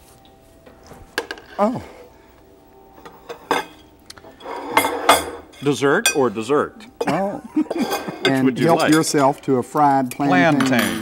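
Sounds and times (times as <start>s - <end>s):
glass dishes clinking: 3.0s - 6.3s, 7.0s - 9.4s, 10.1s - 11.0s.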